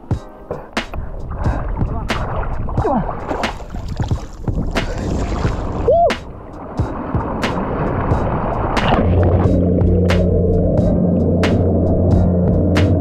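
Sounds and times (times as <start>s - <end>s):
water rushing and splashing: 0.8s - 13.0s
underwater motor hum: 3.9s - 13.0s.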